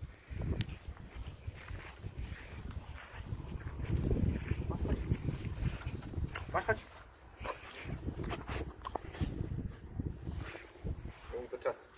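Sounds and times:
footsteps on grass: 0:00.0 - 0:11.9.

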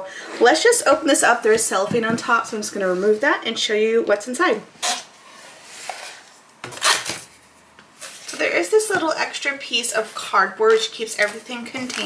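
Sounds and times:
cellophane and cardboard rustling: 0:04.8 - 0:12.0.

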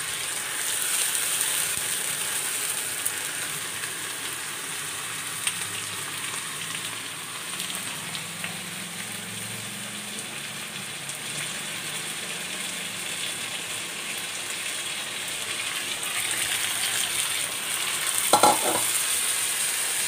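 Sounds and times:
rice and lentils sizzling in a wok: 0:00.0 - 0:20.0.

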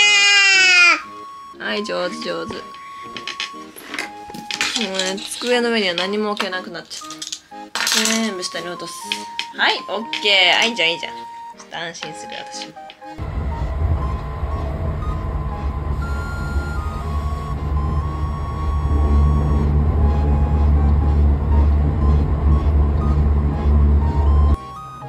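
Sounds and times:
background music: 0:00.0 - 0:25.0
train rumble: 0:13.2 - 0:24.6.

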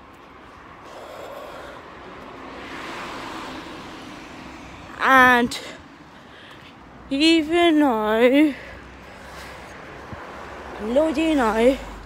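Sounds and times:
car passing on road: 0:00.0 - 0:07.1, 0:08.4 - 0:12.0.

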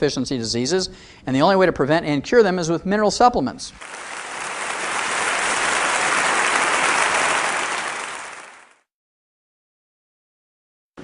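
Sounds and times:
audience applauding: 0:03.8 - 0:08.9.

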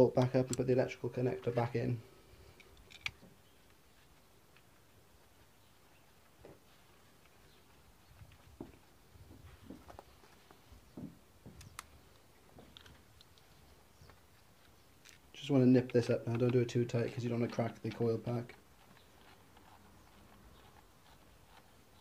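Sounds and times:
faint clicks and knocks of parts: 0:02.4 - 0:22.0.

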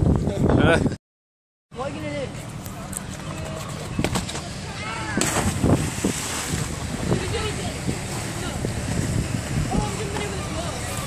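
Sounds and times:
wind noise on microphone: 0:00.0 - 0:01.0, 0:05.2 - 0:11.0
voices calling out: 0:01.9 - 0:11.0.

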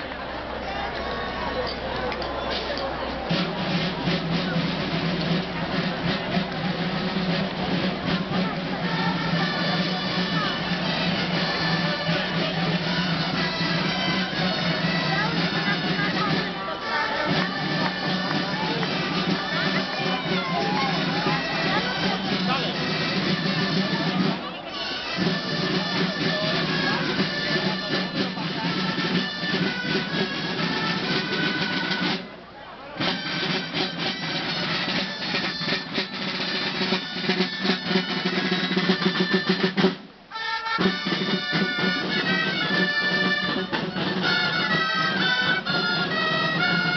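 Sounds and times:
marching side drums: 0:02.2 - 0:46.9
shawms playing reedy melody: 0:03.3 - 0:46.9.

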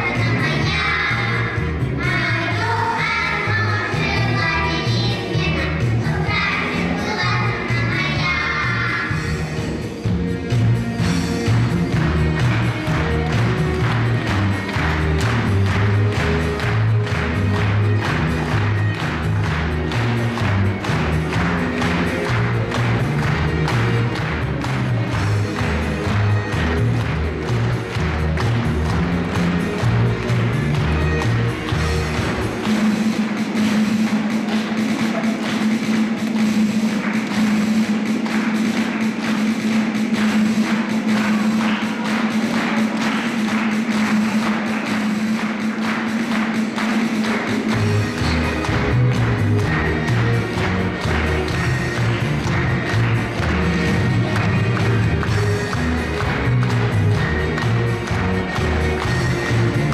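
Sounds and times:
music with a steady beat: 0:00.0 - 0:59.9
pulsing bass line: 0:47.8 - 0:59.9.

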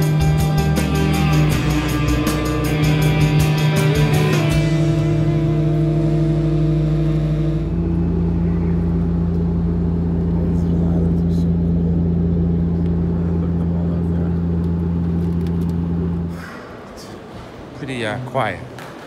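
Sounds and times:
airliner propeller drone in cabin: 0:00.0 - 0:16.8.

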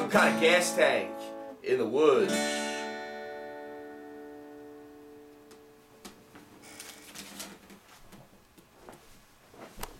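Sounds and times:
acoustic guitar chord ringing: 0:00.0 - 0:06.4.

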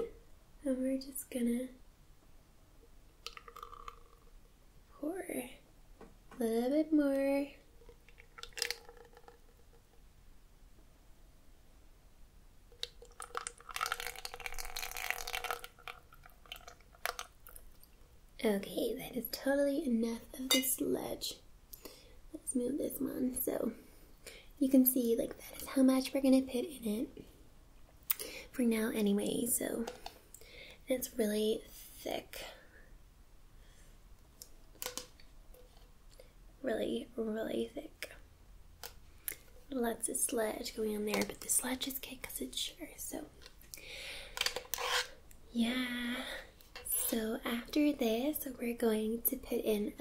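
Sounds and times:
syrup pouring into plastic shaker: 0:03.2 - 0:04.3, 0:07.8 - 0:10.0, 0:12.8 - 0:17.6
soft wet drips: 0:07.8 - 0:09.9, 0:12.8 - 0:18.0.

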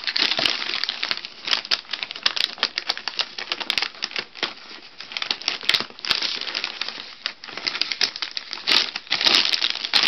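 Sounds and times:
paper crinkling and rustling: 0:00.0 - 0:10.0.

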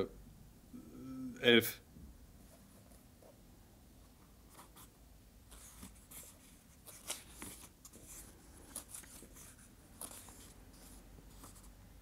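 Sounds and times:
paper pages rustling: 0:05.5 - 0:11.8.

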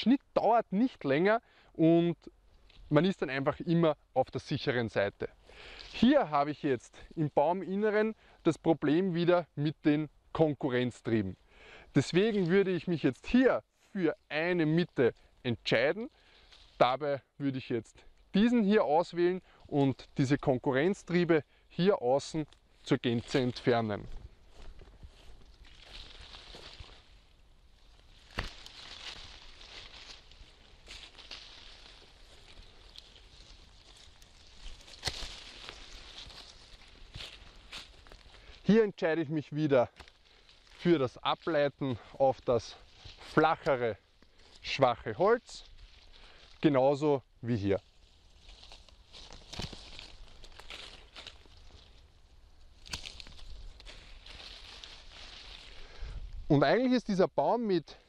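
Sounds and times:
leaves rustling: 0:02.2 - 0:58.0
pruning shears snipping shoots: 0:28.2 - 0:30.2, 0:34.2 - 0:36.5, 0:39.9 - 0:40.2, 0:48.6 - 0:51.5, 0:52.8 - 0:54.3
pruning shears clicking: 0:34.9 - 0:35.5, 0:52.8 - 0:53.3.

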